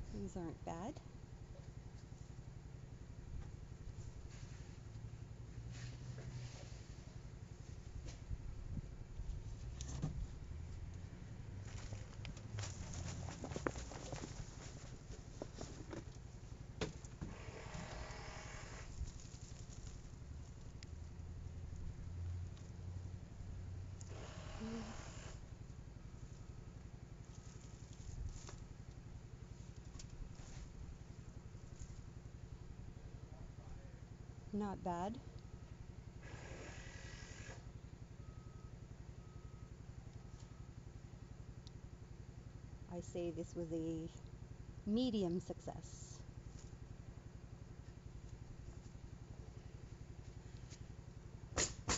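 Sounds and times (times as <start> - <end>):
low steady hum: 0.0 - 51.9
soil and foliage rustling: 11.5 - 18.1, 18.8 - 21.1, 26.1 - 32.8
potting soil and plants rustling: 11.6 - 16.0.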